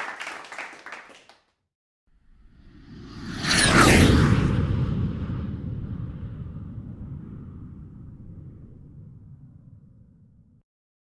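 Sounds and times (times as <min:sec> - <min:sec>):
whoosh sound effect: 0:02.6 - 0:09.0.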